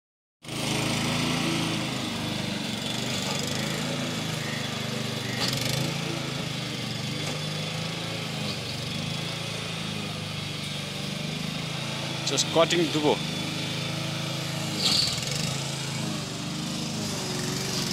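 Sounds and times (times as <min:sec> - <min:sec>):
lawn mower cutting grass: 0:00.4 - 0:17.9.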